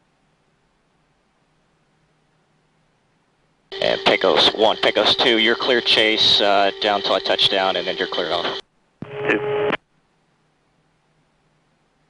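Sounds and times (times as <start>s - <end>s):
radio steady tone: 3.7s - 9.8s
radio transmission click: 3.7s - 9.8s.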